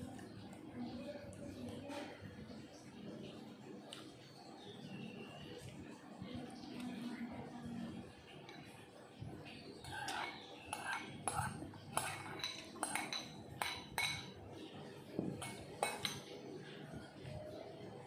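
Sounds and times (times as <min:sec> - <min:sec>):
ceramic dishes clinking: 0:09.8 - 0:14.4, 0:15.2 - 0:16.4.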